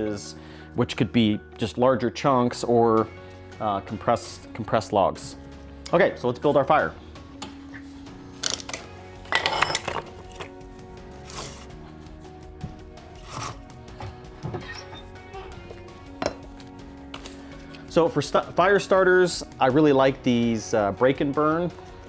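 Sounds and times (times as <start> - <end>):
guitar music: 10.0 - 17.3.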